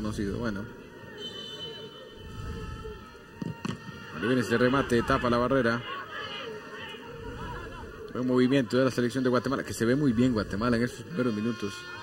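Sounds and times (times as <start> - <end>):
low stadium ambience: 0.0 - 12.0.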